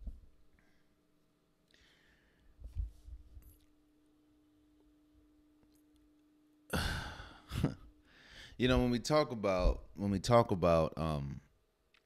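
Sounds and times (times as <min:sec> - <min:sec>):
faint steady hum: 0:00.0 - 0:12.0
breath sound: 0:01.7 - 0:02.6, 0:06.7 - 0:08.6
man sighing heavily: 0:06.7 - 0:08.5.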